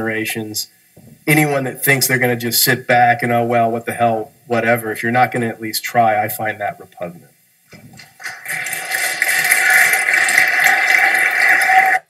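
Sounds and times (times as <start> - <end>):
audience applauding: 8.0 - 12.0.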